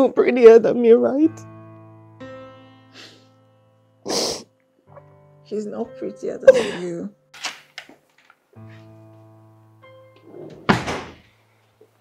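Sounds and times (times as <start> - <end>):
wooden door slamming: 10.6 - 11.3.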